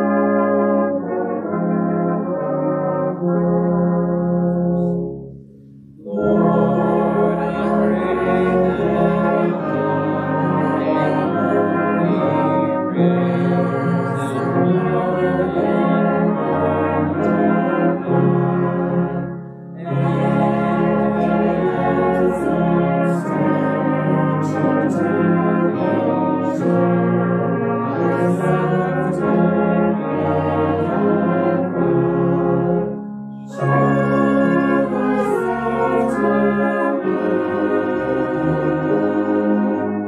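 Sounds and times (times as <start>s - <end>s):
brass band playing hymn tune: 0.0s - 40.0s.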